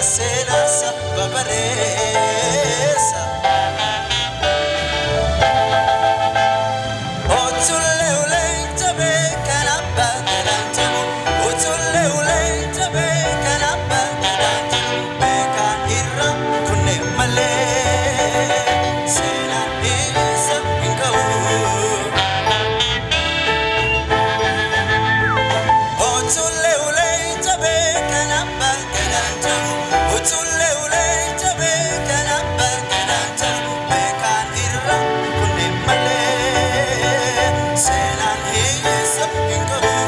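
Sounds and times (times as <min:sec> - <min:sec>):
live band playing: 0:00.0 - 0:40.0
trumpet: 0:00.0 - 0:40.0.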